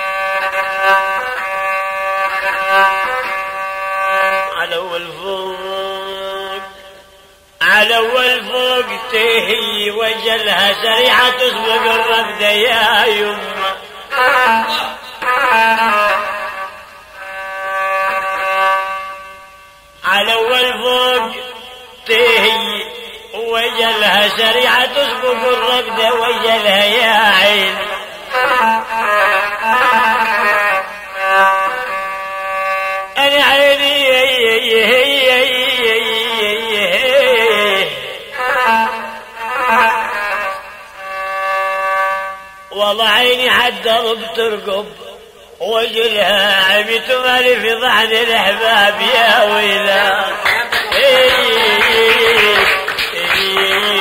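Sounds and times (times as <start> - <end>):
bowed fiddle long note: 0.0 - 7.5, 11.3 - 22.0, 27.4 - 33.2, 38.3 - 42.9
folk singing with ornamented pitch: 0.0 - 41.2, 42.0 - 54.0.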